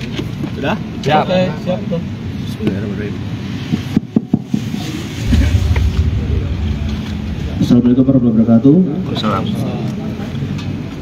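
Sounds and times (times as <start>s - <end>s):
low rumble: 5.0s - 10.0s.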